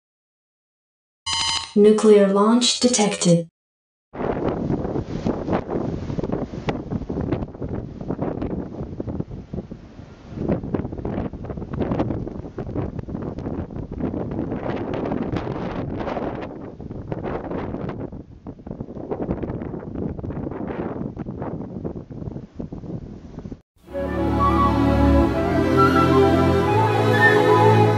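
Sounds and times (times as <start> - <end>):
wind buffeting microphone: 4.2 - 23.6.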